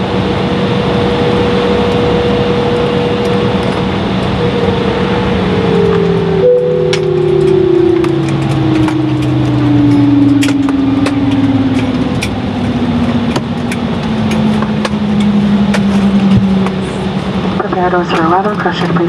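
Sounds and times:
jet engine winding down: 0.0s - 19.0s.

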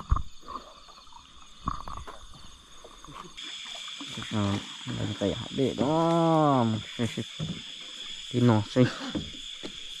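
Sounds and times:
night insects chirring: 0.0s - 10.0s.

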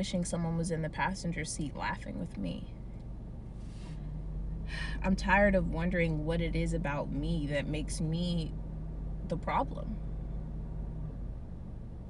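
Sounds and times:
car cabin rumble and hiss: 0.0s - 12.0s
low steady hum: 0.0s - 12.0s.

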